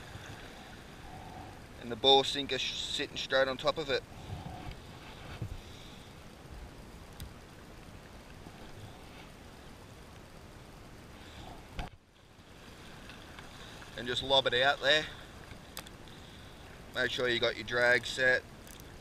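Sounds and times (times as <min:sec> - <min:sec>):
wind on microphone: 0:04.1 - 0:05.6.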